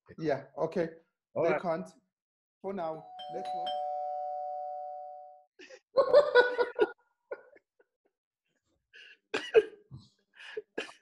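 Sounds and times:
two-tone doorbell chime: 3.0 - 5.4
people laughing: 5.9 - 7.6.

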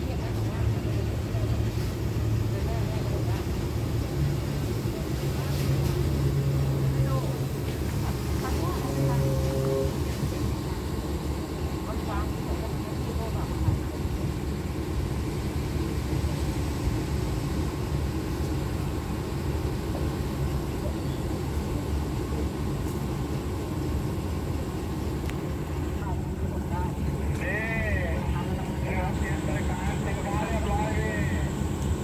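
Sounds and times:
diesel train engines idling: 0.0 - 32.0.

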